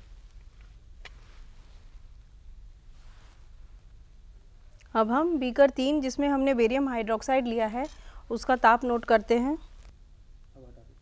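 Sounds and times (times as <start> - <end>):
low steady hum: 0.0 - 11.0
woman speaking: 4.9 - 9.7.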